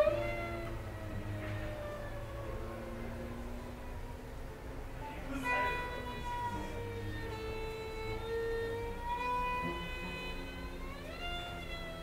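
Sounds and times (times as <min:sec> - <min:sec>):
violin and cello duet: 0:00.0 - 0:12.0.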